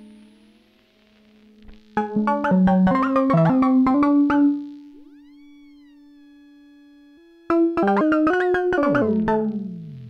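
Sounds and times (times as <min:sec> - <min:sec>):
synthesizer sustained tone: 0:02.2 - 0:10.0.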